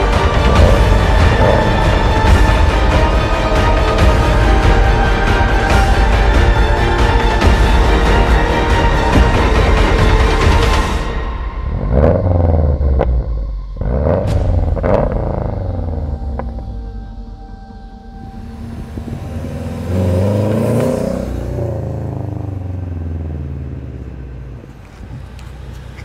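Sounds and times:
car engine revving: 0.0 - 26.0.

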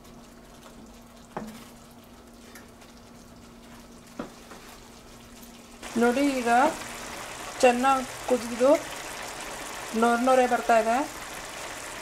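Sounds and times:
sauce simmering and bubbling: 0.0 - 12.0.

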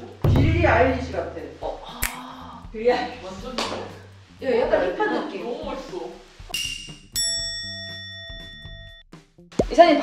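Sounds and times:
bright bell-like ding: 6.5 - 9.0.

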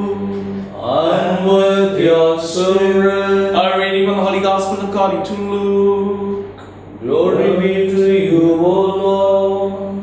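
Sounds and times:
person singing liturgical chant: 0.0 - 10.0.

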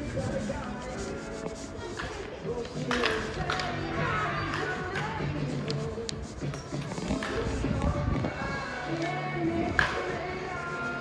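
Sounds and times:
faint background music: 0.0 - 11.0
microphone rubbing and scraping: 0.0 - 11.0.

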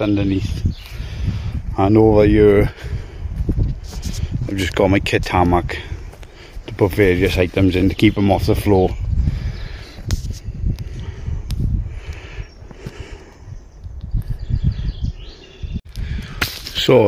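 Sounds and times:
camera handling rumble: 10.0 - 11.7
faint bird chirps: 13.5 - 15.8.

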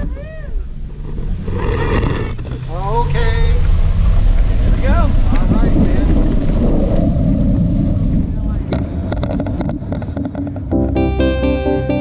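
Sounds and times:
wind buffeting microphone: 3.5 - 10.7
guitar music: 10.7 - 12.0.

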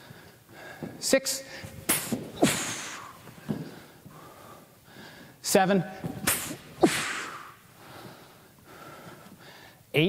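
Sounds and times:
sharp exhaled breath: 1.5 - 5.4, 6.2 - 9.8
staff swishing through air: 1.6 - 3.6, 6.0 - 7.6.

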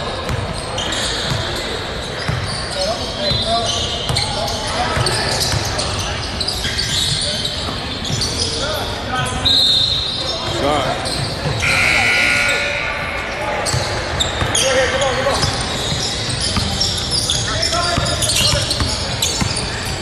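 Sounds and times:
basketball bouncing on court: 0.1 - 0.6, 2.2 - 2.5, 13.6 - 14.6, 15.2 - 19.8
indistinct echoing voices: 10.1 - 20.0
short high-pitched tones: 11.6 - 13.4.

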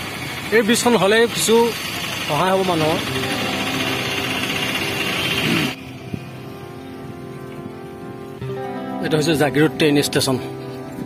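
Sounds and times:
faint background music: 3.1 - 11.0.

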